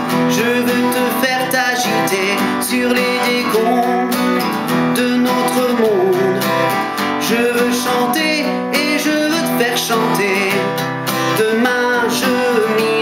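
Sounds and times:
acoustic guitar strummed: 0.0s - 13.0s
man singing: 0.0s - 13.0s.

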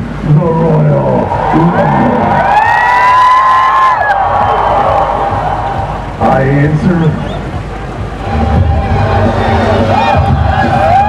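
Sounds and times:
man shouting over loudspeaker: 0.3s - 2.8s
crowd cheering: 0.8s - 11.0s
music: 2.3s - 11.0s.

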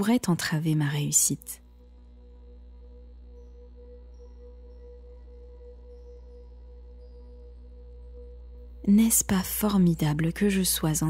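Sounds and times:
low drone: 0.0s - 11.0s
soft ambient music: 0.0s - 11.0s.

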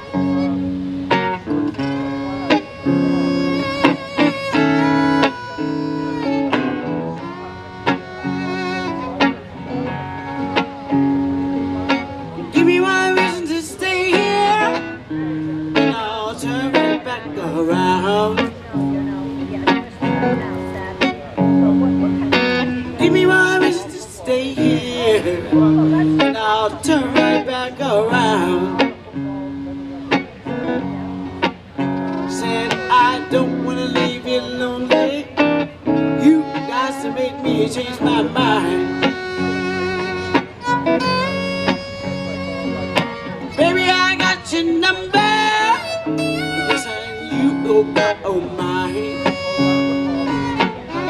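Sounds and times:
violin playing lead: 0.0s - 18.0s, 32.0s - 51.0s
guitar strumming chords: 0.0s - 51.0s.

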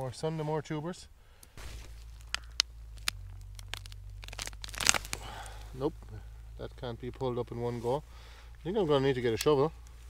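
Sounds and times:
soil crumbling: 1.3s - 10.0s
plant roots snapping and tearing: 1.5s - 5.8s.

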